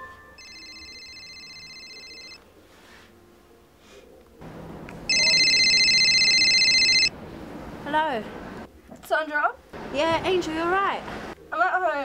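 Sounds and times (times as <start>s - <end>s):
phone buzzing electronic tone: 5.1s - 7.1s.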